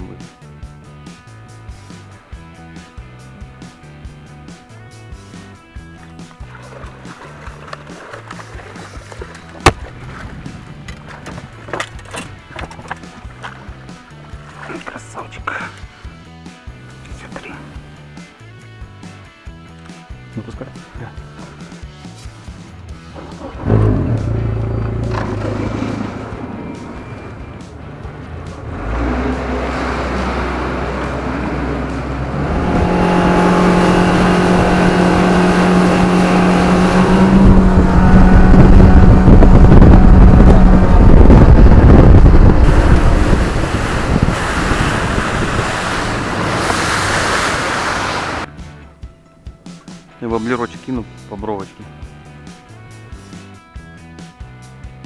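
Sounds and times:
outboard motor running: 5.6s - 15.8s, 23.0s - 48.5s
rushing wind and water: 6.3s - 15.4s, 23.4s - 48.5s.

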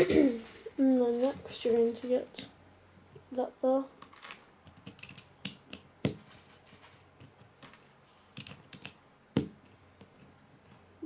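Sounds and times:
plastic bricks clicking: 4.0s - 5.9s, 7.2s - 9.0s.

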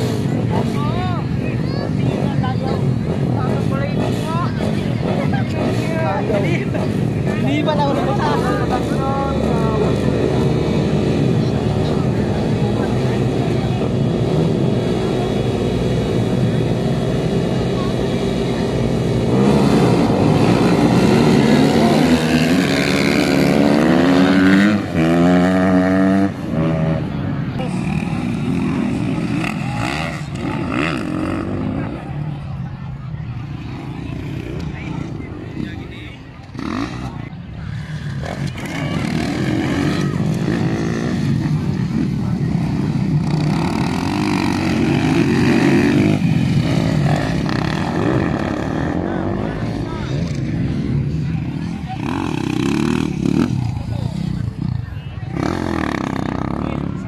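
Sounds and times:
dirt bikes revving and accelerating: 0.0s - 57.0s.

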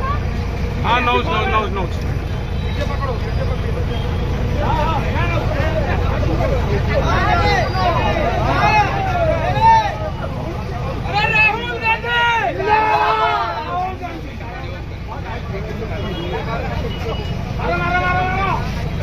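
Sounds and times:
crowd voices calling out: 0.0s - 19.0s
low steady rumble: 0.0s - 19.0s.

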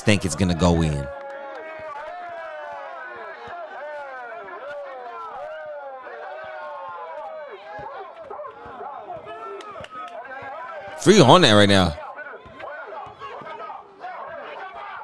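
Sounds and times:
crowd talking and calling out: 0.0s - 15.0s.

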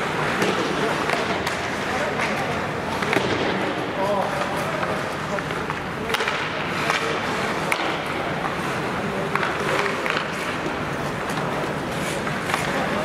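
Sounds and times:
hockey sticks and puck clacking: 0.0s - 13.0s.

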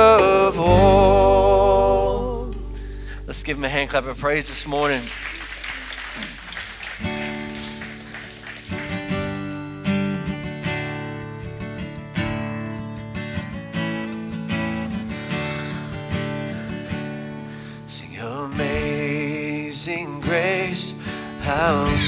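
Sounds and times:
acoustic guitars strumming chords: 0.0s - 5.2s, 6.3s - 22.0s
applause: 4.6s - 9.6s.

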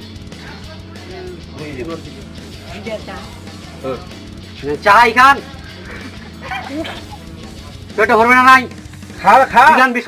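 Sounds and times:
low background music: 0.0s - 10.0s.

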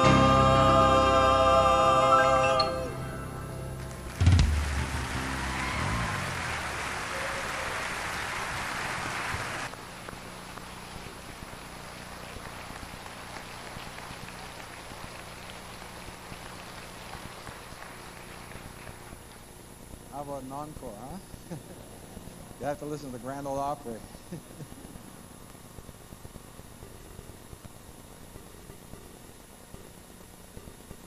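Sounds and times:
audience applauding: 3.9s - 9.7s, 10.6s - 19.4s
loud thump: 4.2s - 5.3s.

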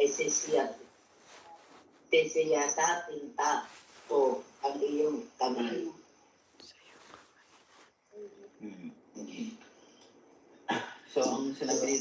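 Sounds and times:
light hiss: 0.0s - 2.8s, 3.4s - 8.6s.

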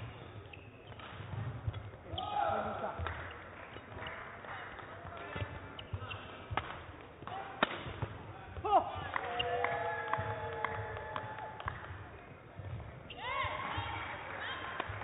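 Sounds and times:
shoes squeaking on court: 0.0s - 2.4s, 4.9s - 8.2s
racket striking shuttlecock: 5.0s - 8.2s.

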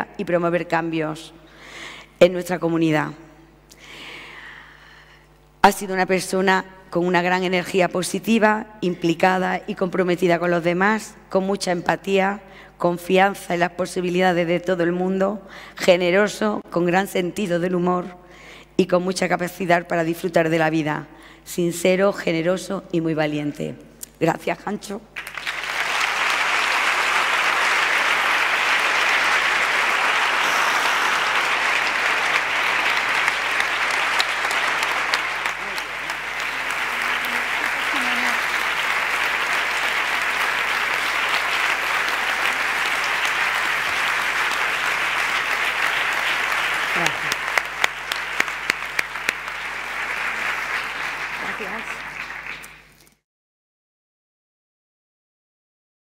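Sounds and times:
voices through clapping: 25.2s - 52.9s
audience applauding: 25.2s - 53.0s.

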